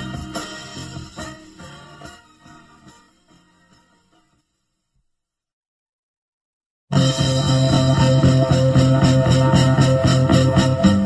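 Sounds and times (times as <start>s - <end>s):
song starting abruptly: 6.9s - 11.0s.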